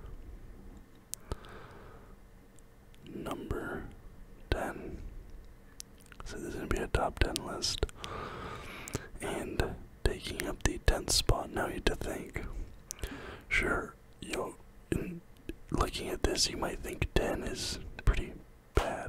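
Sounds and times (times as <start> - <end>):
person whispering: 3.0 - 5.1, 6.2 - 8.0, 9.0 - 19.0.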